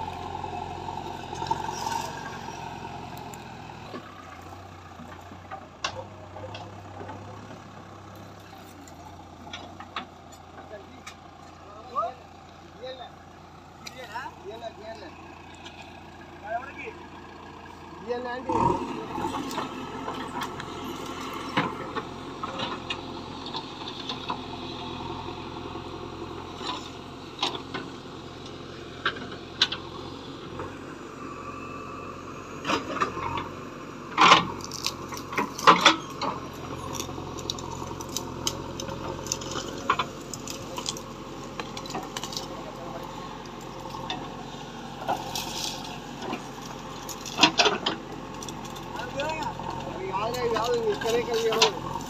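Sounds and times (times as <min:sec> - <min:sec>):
dry branches crackling and snapping: 0:00.0 - 0:11.6, 0:18.5 - 0:30.8, 0:34.2 - 0:52.0
diesel engine running: 0:00.0 - 0:52.0.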